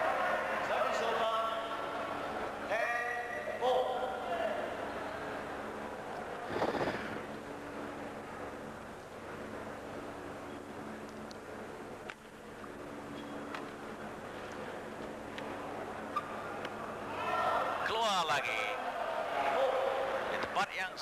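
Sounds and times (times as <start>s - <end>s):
steady low hum: 0.0s - 17.9s.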